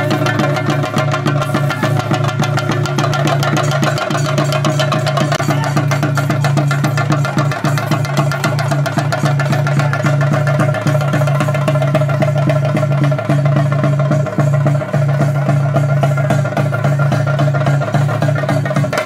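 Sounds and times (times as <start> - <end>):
drums beaten in a fast roll: 0.0 - 19.0.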